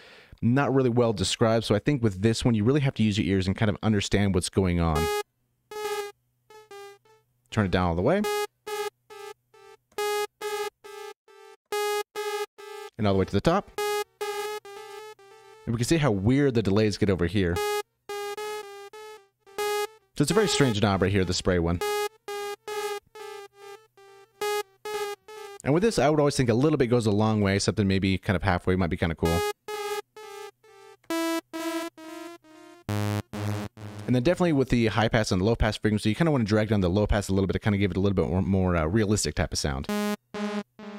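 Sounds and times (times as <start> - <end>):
synthesizer notes with echoes: 5.0 - 7.0, 17.6 - 25.6, 29.2 - 34.1.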